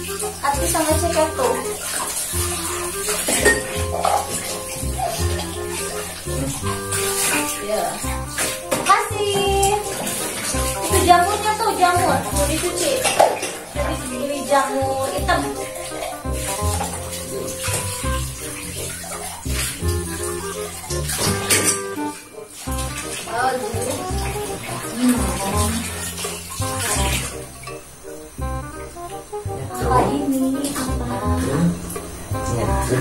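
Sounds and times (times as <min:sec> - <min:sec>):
tap water splashing into bowl: 0:00.0 - 0:27.8
background music with bass line: 0:00.0 - 0:33.0
dishes and cutlery clinking: 0:03.0 - 0:05.3, 0:12.7 - 0:13.8, 0:21.1 - 0:22.2
background music with bass beat: 0:28.4 - 0:30.2, 0:30.8 - 0:33.0.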